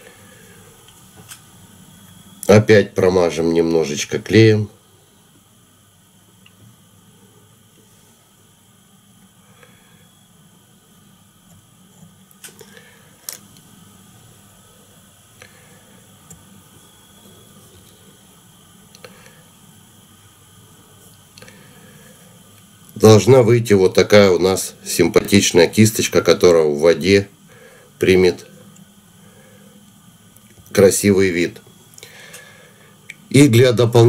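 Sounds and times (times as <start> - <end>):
steady hum: 0.0 - 34.0.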